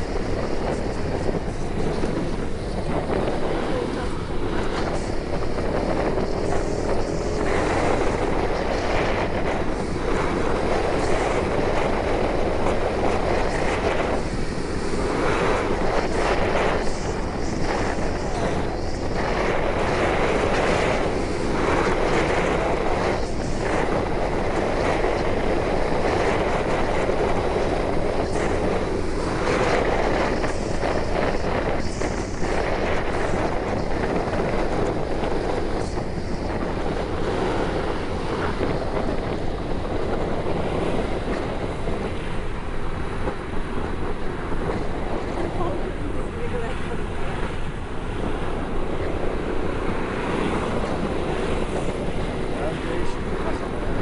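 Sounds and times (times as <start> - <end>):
wind and road noise from motorbike: 0.0 - 54.0
wind buffeting microphone: 0.0 - 54.0.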